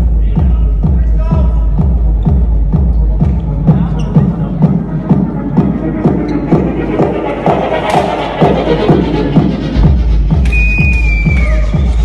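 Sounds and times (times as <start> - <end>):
loud techno music: 0.0 - 12.0.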